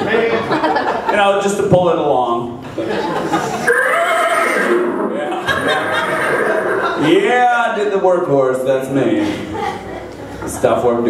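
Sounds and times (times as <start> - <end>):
man imitating horse whinny: 3.7 - 7.0.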